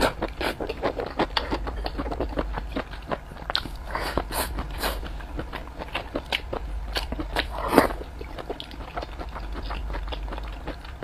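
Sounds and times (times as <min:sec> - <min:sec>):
chewing and mouth smacking: 0:00.0 - 0:11.0.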